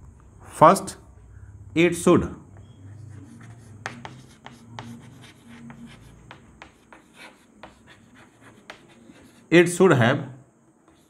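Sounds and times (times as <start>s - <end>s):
chalk tapping and scratching: 2.6s - 9.5s.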